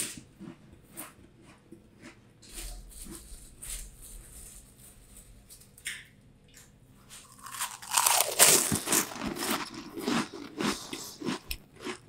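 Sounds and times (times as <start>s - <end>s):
person chewing crunchy snacks: 7.1s - 12.0s.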